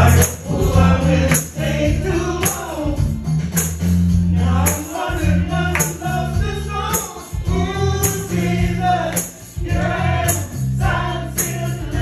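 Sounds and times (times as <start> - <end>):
electronic keyboard with bass line: 0.0 - 12.0.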